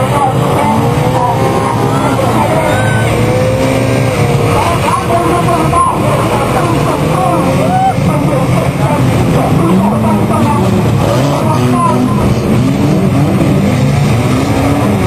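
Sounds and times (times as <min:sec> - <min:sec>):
person talking: 0:00.0 - 0:03.2, 0:04.5 - 0:12.3
car engines revving: 0:00.0 - 0:15.0.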